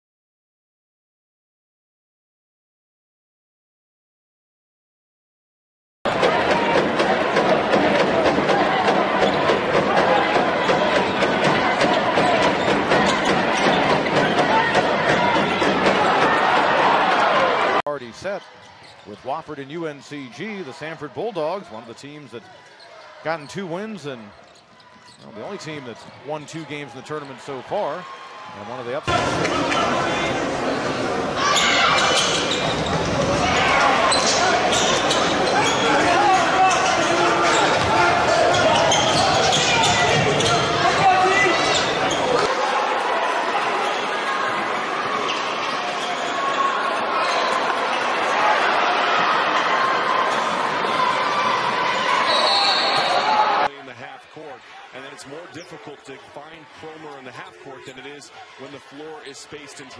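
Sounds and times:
arena crowd murmur: 6.1s - 59.9s.

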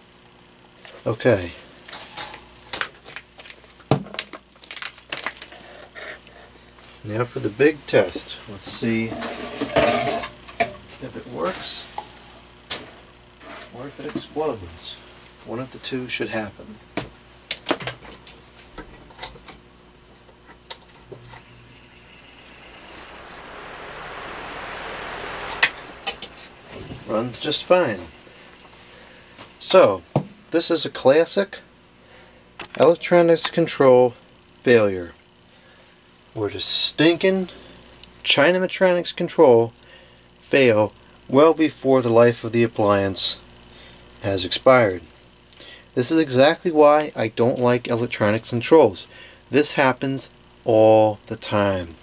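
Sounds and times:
fan whoosh of air: 20.8s - 29.9s.

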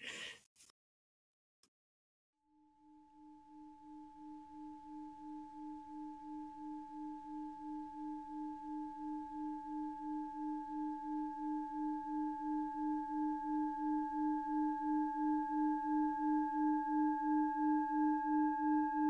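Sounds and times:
singing bowl ringing tone: 2.5s - 19.0s.

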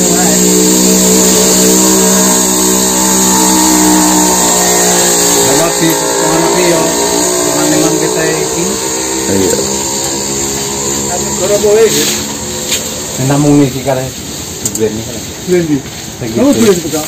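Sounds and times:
chainsaw running at high revs: 0.0s - 15.6s.

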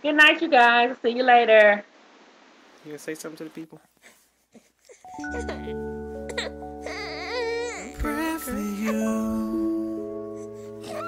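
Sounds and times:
slow ballad music: 5.0s - 11.0s.

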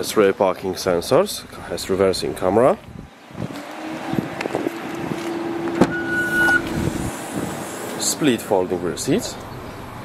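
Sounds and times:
tailgate motor whine: 5.6s - 8.0s
short high beep: 5.9s - 6.7s.

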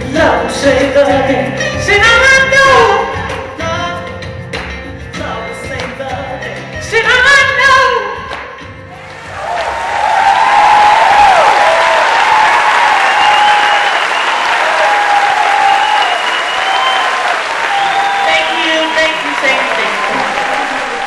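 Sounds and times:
audience applauding: 9.0s - 21.0s.

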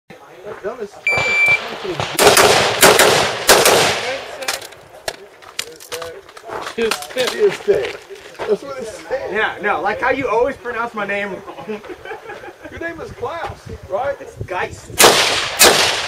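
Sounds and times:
shot timer beep: 1.1s - 1.6s
gunshots: 1.1s - 4.6s, 15.0s - 16.0s.

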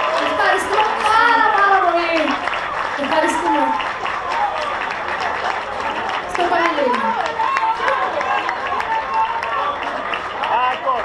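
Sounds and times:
crowd cheering and shouting: 0.0s - 11.0s
scattered clapping: 0.0s - 11.0s.

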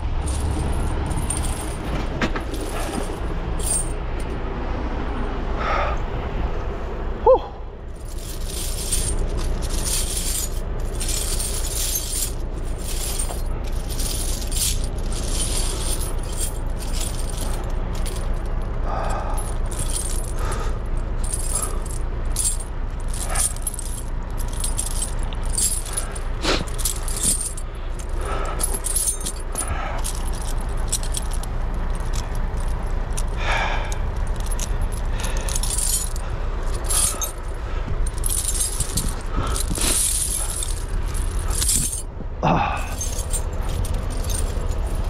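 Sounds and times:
tire chains clinking: 0.0s - 5.4s, 7.9s - 45.0s
steady low rumble: 0.0s - 45.0s.

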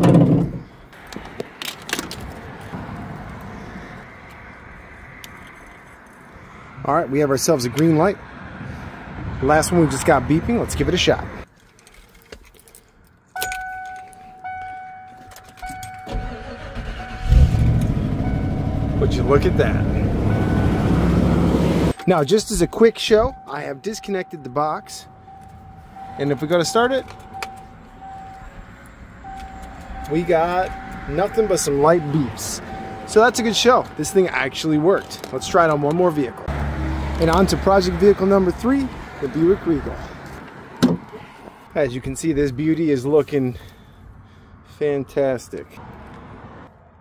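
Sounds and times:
truck engine running: 16.2s - 22.0s.

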